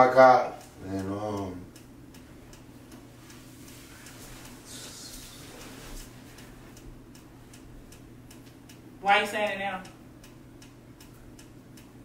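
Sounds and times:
low room tone hum: 0.0 - 12.0
faint ticking: 0.1 - 12.0.

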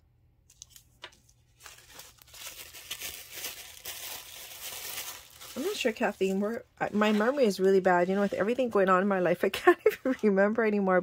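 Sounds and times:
tissue paper crinkling: 0.5 - 8.8.

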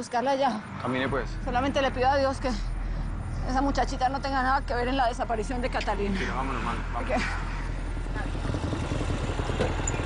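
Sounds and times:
auto-rickshaw engine putter: 8.1 - 10.0.

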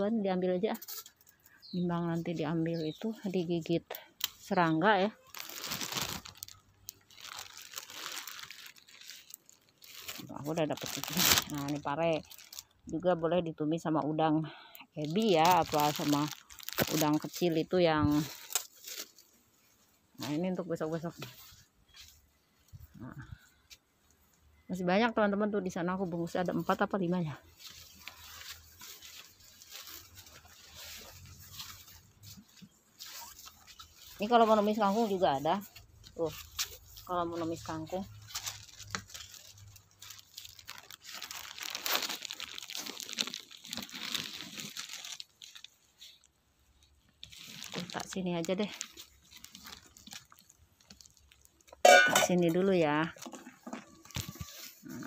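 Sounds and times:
leaves and stems rustling: 0.0 - 13.4, 14.2 - 55.0
plastic bag crinkling: 1.7 - 12.9, 14.9 - 23.3, 25.8 - 55.0.

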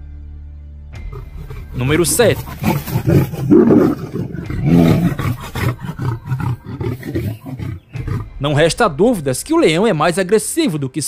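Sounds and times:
big cats roaring and snarling: 1.0 - 8.8.

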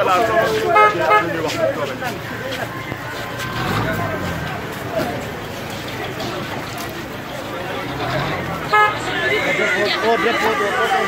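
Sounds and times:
crowd chatter: 0.0 - 11.0
horn toot: 8.1 - 9.4.

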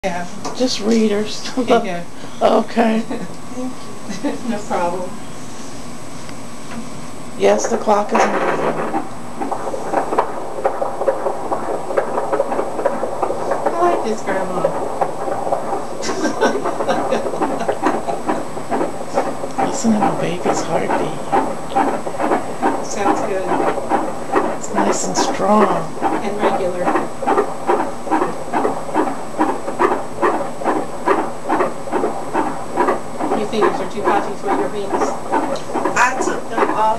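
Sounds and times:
fetal heartbeat through doppler speaker: 0.0 - 5.6, 6.8 - 36.9.

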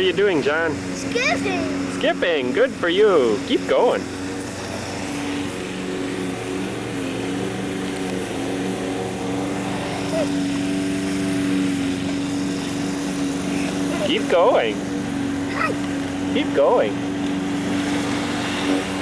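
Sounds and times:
lawn mower engine running: 0.0 - 19.0.

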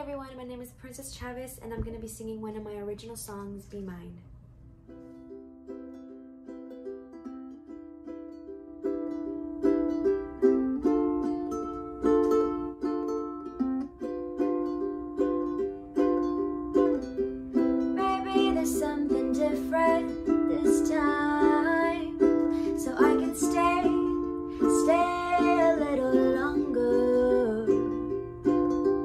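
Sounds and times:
ukulele strumming chords: 4.8 - 29.0
woman singing: 18.0 - 28.2.

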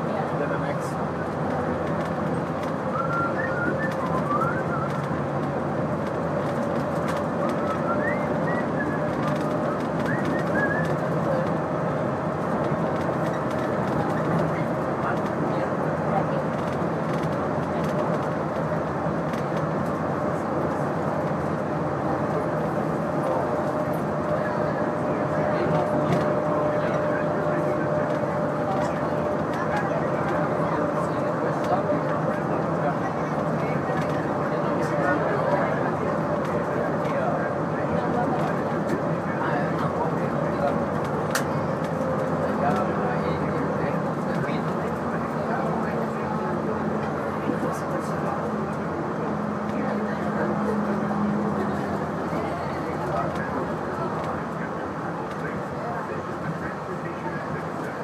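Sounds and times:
train cabin rumble: 0.0 - 58.0.

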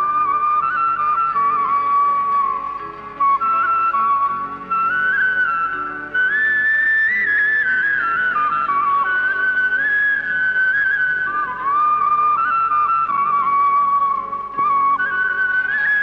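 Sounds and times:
soft low accompaniment: 0.0 - 16.0
solo flute melody: 0.0 - 16.0.

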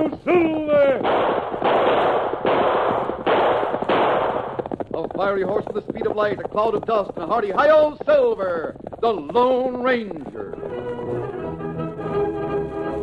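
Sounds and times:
man speaking: 0.0 - 1.1, 4.9 - 10.6
gunshots: 0.6 - 5.6.

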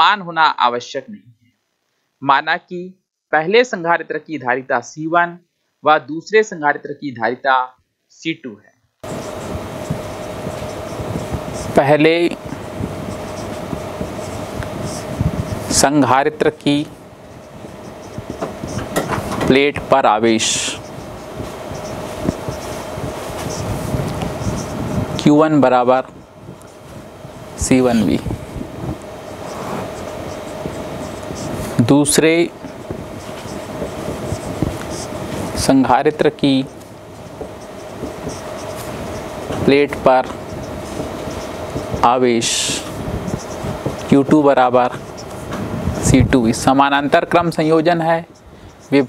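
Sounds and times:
faint hum: 0.0 - 49.0
steady background hiss: 0.0 - 49.0
marker scratching on whiteboard: 9.0 - 16.3, 17.2 - 25.2, 27.7 - 46.8, 47.7 - 49.0.

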